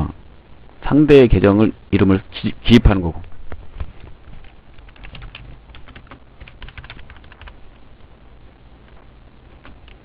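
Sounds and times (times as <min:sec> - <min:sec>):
low steady hum: 0:00.0 - 0:10.0
keyboard typing clicks: 0:04.8 - 0:07.6.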